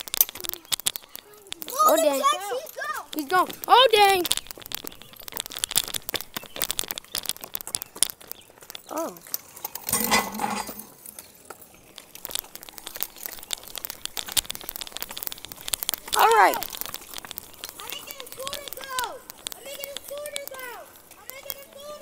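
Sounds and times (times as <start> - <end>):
microphone crackling and clicking: 0.0 - 2.3, 3.0 - 10.9, 11.8 - 22.0.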